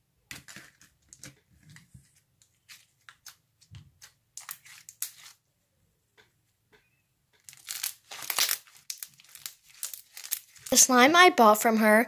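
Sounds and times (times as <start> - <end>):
slime crackling and popping: 7.4 - 10.8.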